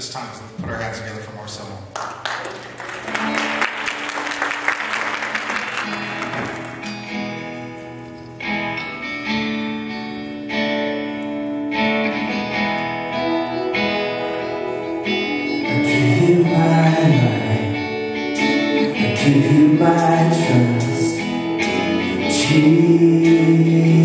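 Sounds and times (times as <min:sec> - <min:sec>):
congregation clapping: 0:01.7 - 0:07.4
acoustic guitar chords ringing: 0:04.9 - 0:24.0.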